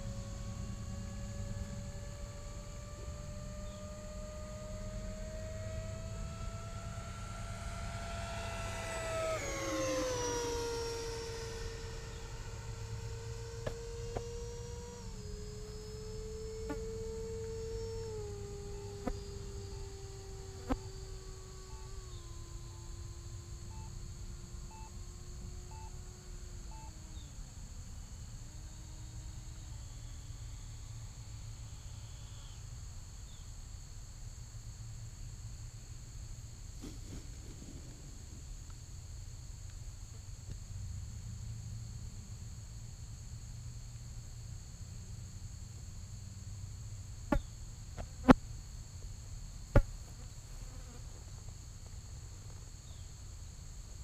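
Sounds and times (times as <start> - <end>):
distant model jet hum: 0.0 - 33.5, 35.5 - 43.8, 44.6 - 54.0
insects chirring: 0.0 - 54.0.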